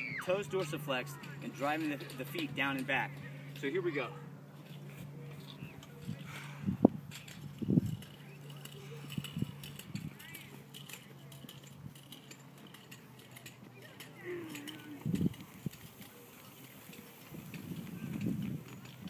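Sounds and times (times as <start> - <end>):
sled runners scraping on grass: 0.0 - 19.0.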